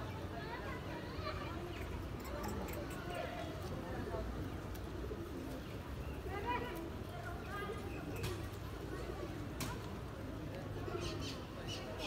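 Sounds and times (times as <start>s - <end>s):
murmur of distant voices: 0.0s - 12.0s.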